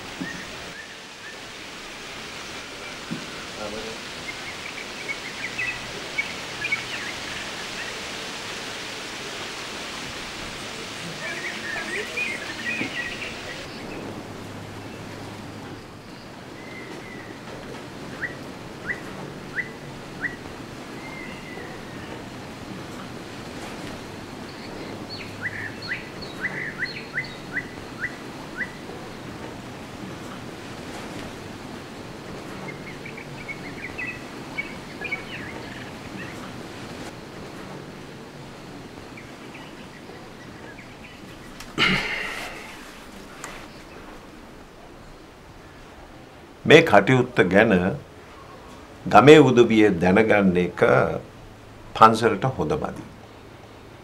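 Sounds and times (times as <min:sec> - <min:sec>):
small birds chirping: 0:00.0 - 0:46.3
steady hiss: 0:00.0 - 0:54.0.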